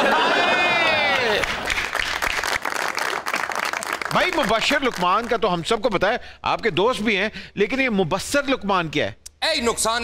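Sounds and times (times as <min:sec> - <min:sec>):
audience applauding: 0:00.0 - 0:05.5.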